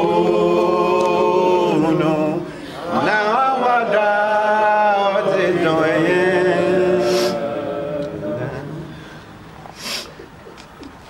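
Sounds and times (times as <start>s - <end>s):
sharp sniffling breath: 7.0s - 7.4s, 8.9s - 10.3s.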